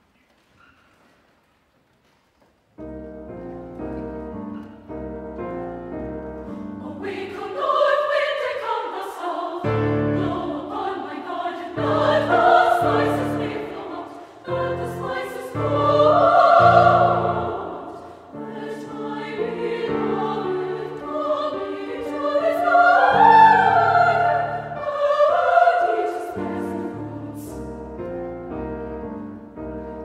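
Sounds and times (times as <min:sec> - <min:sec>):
mixed choir singing: 0:06.4 - 0:28.0.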